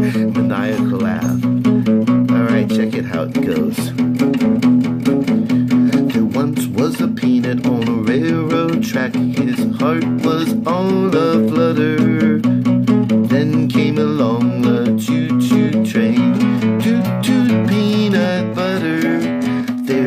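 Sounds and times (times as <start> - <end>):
acoustic guitar strumming: 0.0 - 20.0.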